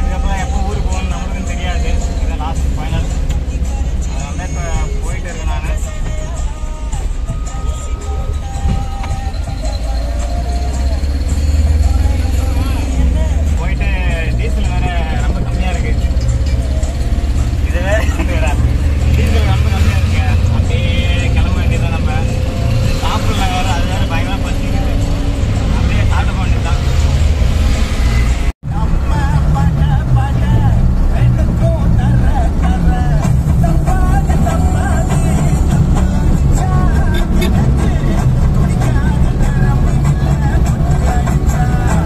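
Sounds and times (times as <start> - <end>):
engine and road rumble: 0.0 - 42.0
voices talking: 7.1 - 27.5, 28.8 - 42.0.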